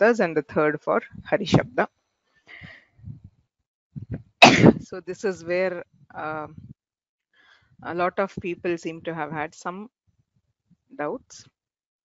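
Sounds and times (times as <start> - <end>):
woman coughing: 4.4 - 4.9.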